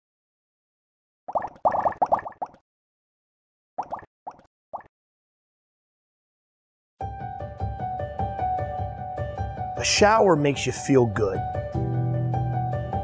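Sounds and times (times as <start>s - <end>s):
water drops plopping: 1.3s - 2.6s, 3.8s - 4.9s.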